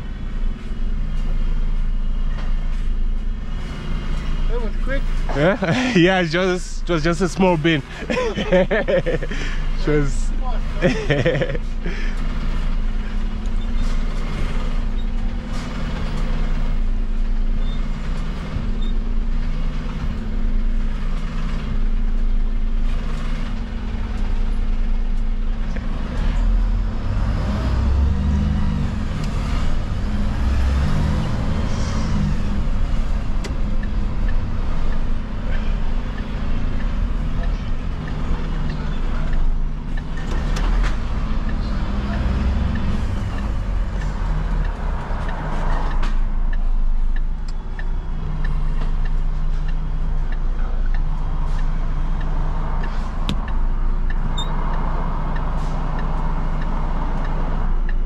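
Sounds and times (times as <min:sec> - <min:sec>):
truck diesel engine hum: 0:00.0 - 0:58.0.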